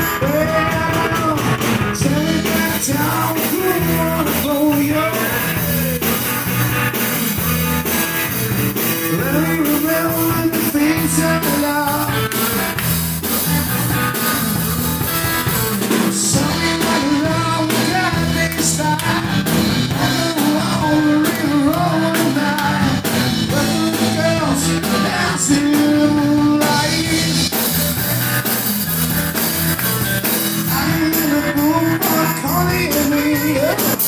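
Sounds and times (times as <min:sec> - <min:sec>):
person singing: 0:00.0 - 0:06.4, 0:08.8 - 0:14.8, 0:15.4 - 0:28.5, 0:30.5 - 0:34.0
rock band playing: 0:00.0 - 0:34.0.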